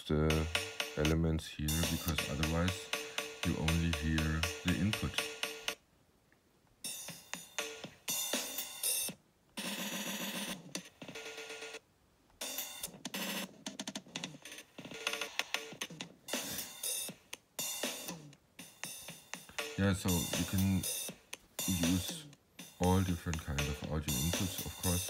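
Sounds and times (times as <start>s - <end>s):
stuttering electronic drum loop: 0.0s - 5.8s, 6.8s - 11.8s, 12.4s - 25.0s.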